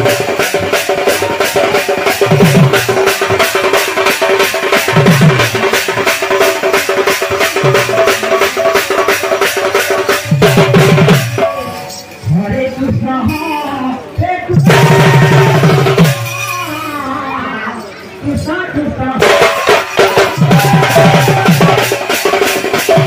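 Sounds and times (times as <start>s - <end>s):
devotional music with fast beat: 19.2s - 23.0s.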